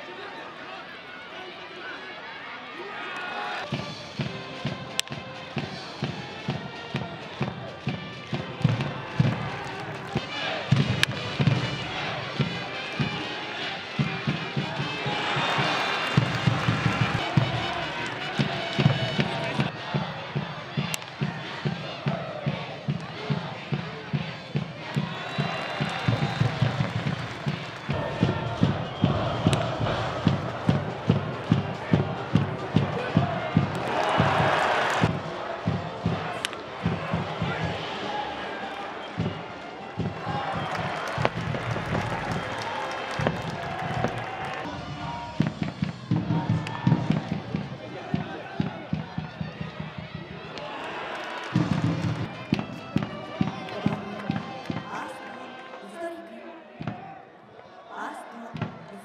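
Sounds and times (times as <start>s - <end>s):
crowd chanting: 0.0s - 59.0s
crowd noise burst: 0.0s - 59.0s
steady drumbeat: 3.7s - 55.0s
brass playing: 9.8s - 19.7s.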